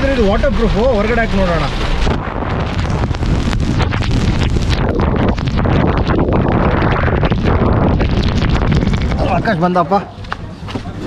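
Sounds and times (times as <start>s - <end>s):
deep rumble: 0.0s - 11.0s
wind buffeting microphone: 0.0s - 11.0s.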